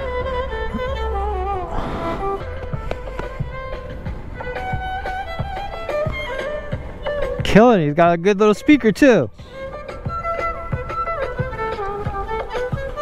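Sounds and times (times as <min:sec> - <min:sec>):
violin melody through speaker: 0:00.0 - 0:13.0.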